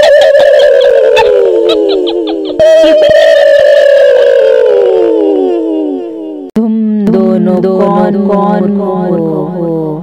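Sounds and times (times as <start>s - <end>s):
cartoon descending wobbly tone: 0.0s - 6.1s.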